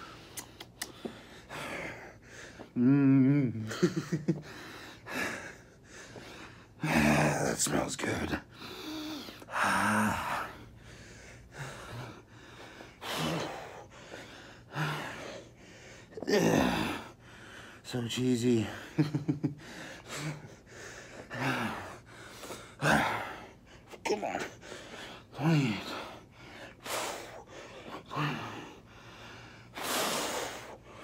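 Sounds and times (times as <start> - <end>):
man breathing hard: 0.0 - 3.0, 4.3 - 7.6, 8.4 - 17.9, 18.5 - 31.0
man grunting: 2.8 - 3.8, 6.8 - 7.6, 16.2 - 17.0, 24.0 - 24.6.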